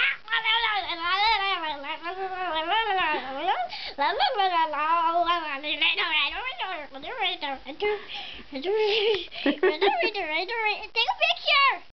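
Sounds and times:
child singing wordlessly: 0.0 - 8.0, 8.6 - 11.9.

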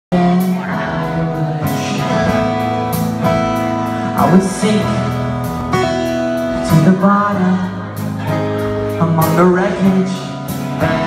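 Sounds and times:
electric guitar: 0.1 - 11.0
strummed acoustic guitar: 0.2 - 11.0.

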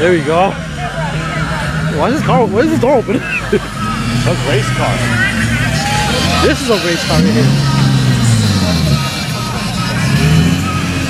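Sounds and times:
car engine at low revs: 0.0 - 11.0.

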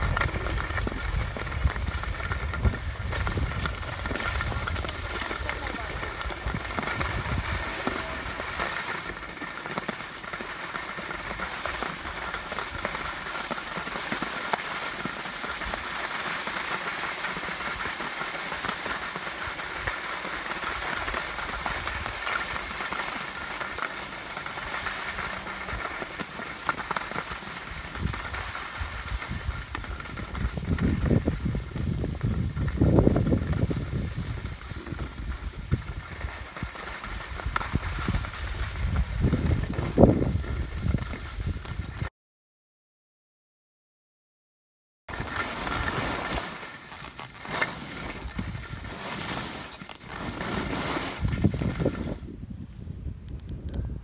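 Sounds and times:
wind buffeting microphone: 0.0 - 8.6, 27.6 - 42.1, 48.2 - 48.9, 51.1 - 54.0
skis scraping over snow: 0.0 - 42.1, 45.1 - 52.3.

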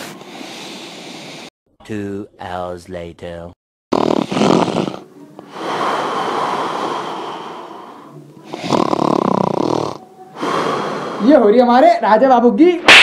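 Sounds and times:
person snoring: 3.9 - 11.6.

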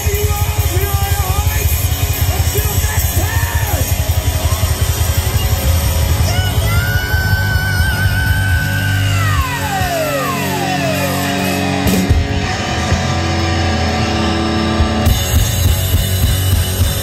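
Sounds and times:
hard rock band playing live: 0.0 - 17.0.

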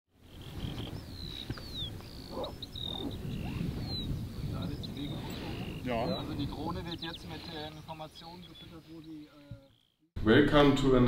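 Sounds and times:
small birds singing: 0.1 - 10.1.

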